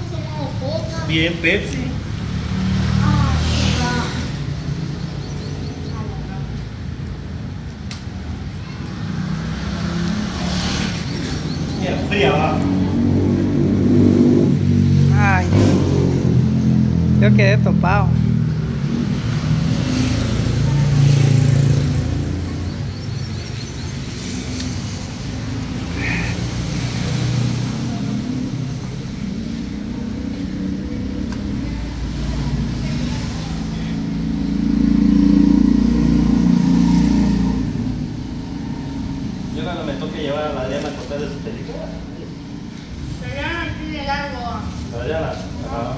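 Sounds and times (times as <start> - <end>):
road traffic engine rumble: 0.0 - 45.9.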